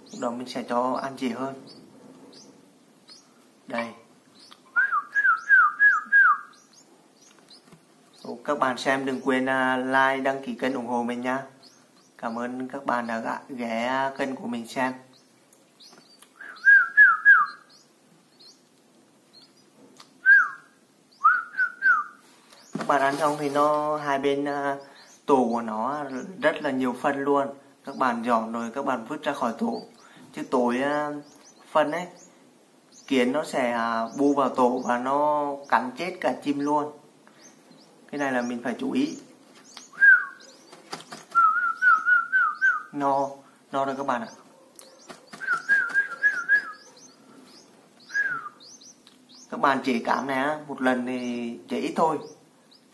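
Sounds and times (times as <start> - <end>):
chicks chirping faintly: 0.0 - 52.9
person whistling: 4.8 - 6.5, 16.4 - 17.5, 20.2 - 20.6, 21.2 - 22.2, 40.0 - 40.4, 41.4 - 42.9, 45.4 - 46.8, 48.1 - 48.6.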